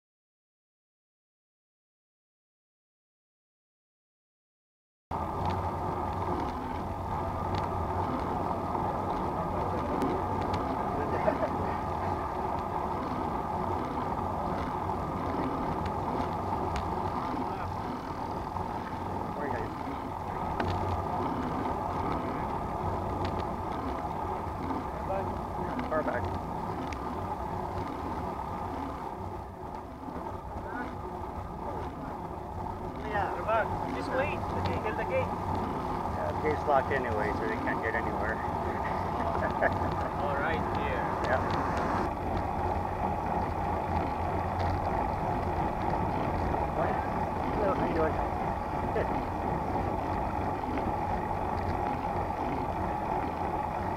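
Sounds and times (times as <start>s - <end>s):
tyres on asphalt: 5.1s - 53.9s
rushing wind: 5.2s - 53.9s
faint voices: 6.2s - 53.9s.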